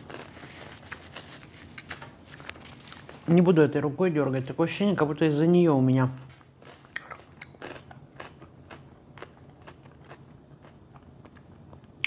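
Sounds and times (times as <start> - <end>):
person chewing food: 0.0 - 3.3, 6.2 - 12.0.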